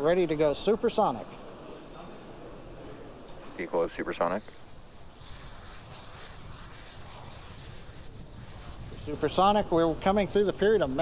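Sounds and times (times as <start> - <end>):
rocket engines rushing roar: 0.0 - 11.0.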